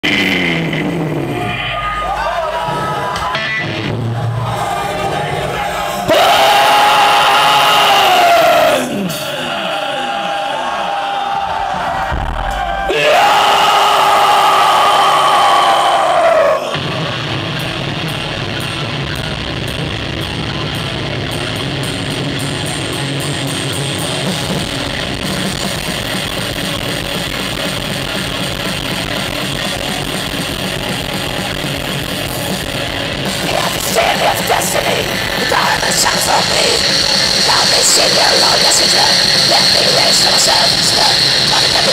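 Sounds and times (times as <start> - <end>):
thrash metal band playing live: 0.0 - 9.6, 16.7 - 41.9
drums: 0.0 - 41.9.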